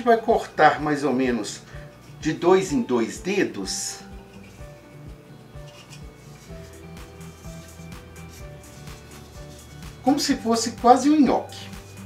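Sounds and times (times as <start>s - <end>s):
background music with beat: 3.7s - 12.0s.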